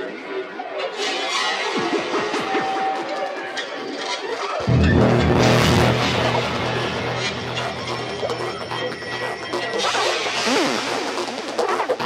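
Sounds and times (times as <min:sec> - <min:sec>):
held high synth note: 0:04.6 - 0:11.0
falling synth sweeps: 0:04.6 - 0:11.6.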